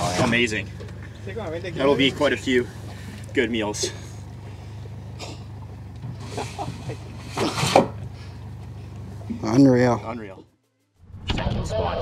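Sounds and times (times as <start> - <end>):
boat motor idling: 0.0 - 11.1.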